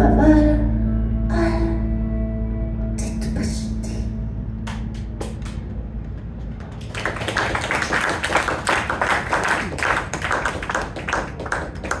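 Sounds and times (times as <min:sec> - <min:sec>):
low steady hum: 0:00.0 - 0:12.0
audience applauding: 0:06.6 - 0:12.0.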